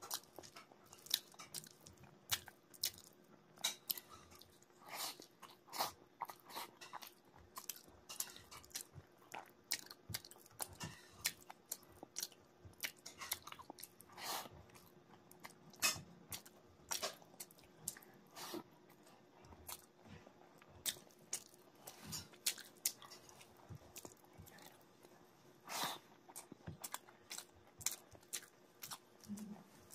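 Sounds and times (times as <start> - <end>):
chewing with wet mouth clicks: 0.0 - 14.1, 14.7 - 18.2, 18.8 - 25.1, 26.1 - 29.9.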